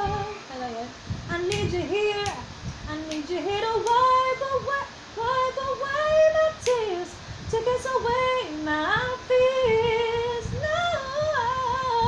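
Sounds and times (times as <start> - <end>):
woman singing a cappella: 0.0 - 12.0.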